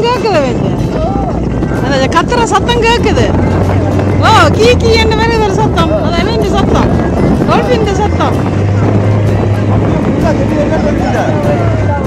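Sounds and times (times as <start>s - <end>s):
motorboat engine droning: 0.0s - 12.0s
people's voices: 0.0s - 12.0s
water splashing along hull: 0.0s - 12.0s.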